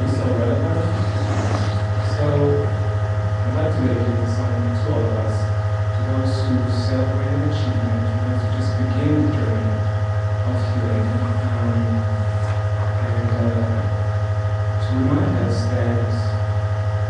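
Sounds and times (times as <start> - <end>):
loud low hum: 0.0 - 17.0.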